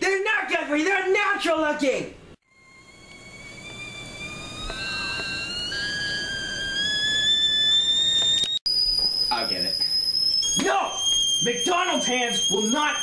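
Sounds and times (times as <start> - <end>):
kettle whistling: 2.5 - 13.0.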